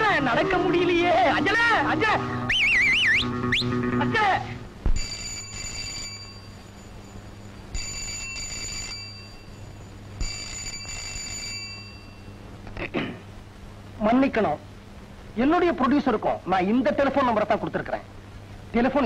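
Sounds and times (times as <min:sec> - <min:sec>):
warbling high-pitched sound: 0:00.0 - 0:04.2
telephone ringing: 0:04.9 - 0:12.5.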